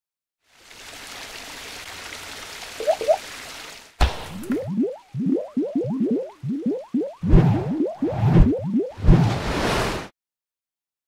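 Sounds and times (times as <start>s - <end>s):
short rising bloops: 2.8s - 3.2s, 4.3s - 9.3s
sharp splat: 4.0s - 4.6s.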